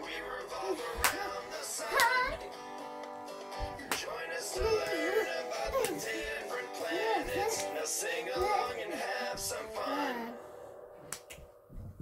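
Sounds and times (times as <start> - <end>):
soft low thumps: 3.5 - 3.8.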